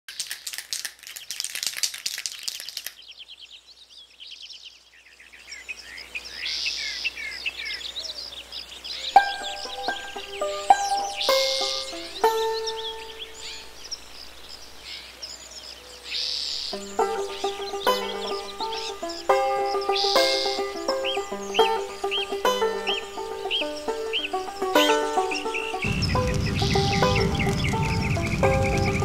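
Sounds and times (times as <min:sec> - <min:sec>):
birds chirping and calling: 0:02.2 - 0:29.0
melody with held notes: 0:09.2 - 0:13.5, 0:16.8 - 0:29.0
rasping bird trill: 0:16.2 - 0:29.0.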